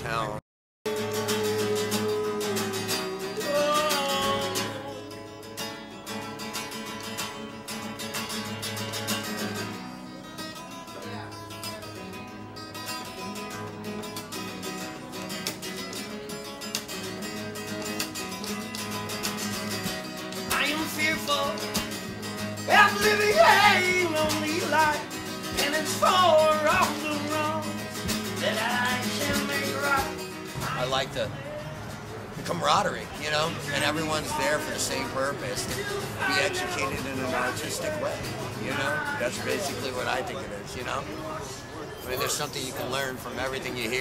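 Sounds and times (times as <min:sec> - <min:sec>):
acoustic guitar strummed fast: 0:00.9 - 0:41.0.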